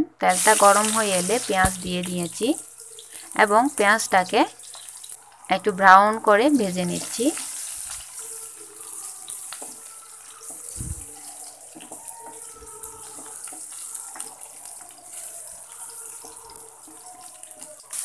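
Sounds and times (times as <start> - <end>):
onions sizzling in oil: 0.3 - 18.0.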